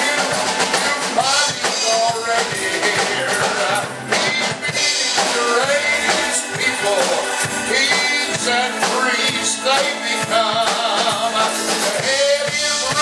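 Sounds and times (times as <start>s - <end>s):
instrumental accompaniment with drums: 0.0s - 13.0s
man singing into microphone: 0.0s - 13.0s.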